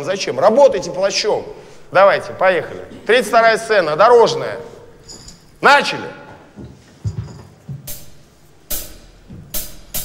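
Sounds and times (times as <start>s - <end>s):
drum kit playing: 7.8s - 10.0s.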